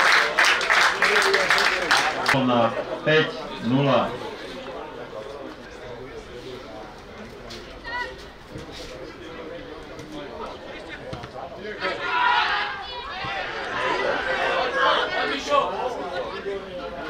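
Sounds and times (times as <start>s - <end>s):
players shouting: 10.5s - 17.0s.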